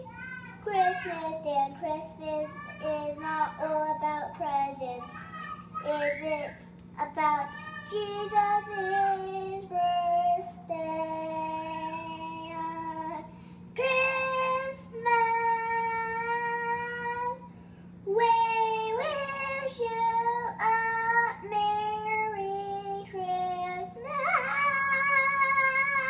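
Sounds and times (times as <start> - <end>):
girl singing: 0.0 - 26.0
steady low hum: 0.0 - 26.0.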